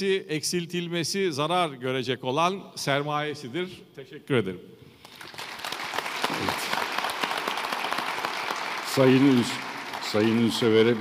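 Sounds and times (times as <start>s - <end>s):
audience applauding: 5.0s - 11.0s.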